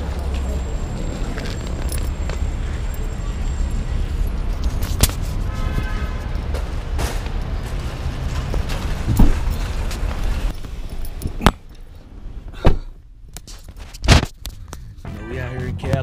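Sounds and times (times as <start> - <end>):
suitcase wheels rumbling on concrete: 0.0 - 3.2, 4.1 - 11.4.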